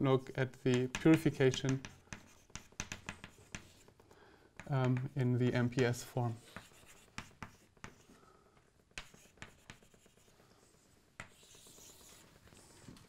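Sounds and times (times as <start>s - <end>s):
chalk writing on blackboard: 0.5s - 8.2s, 8.9s - 12.8s.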